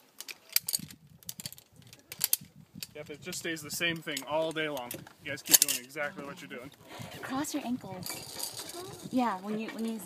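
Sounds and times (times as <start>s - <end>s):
metal carabiners clinking: 0.2s - 6.1s, 8.0s - 9.2s.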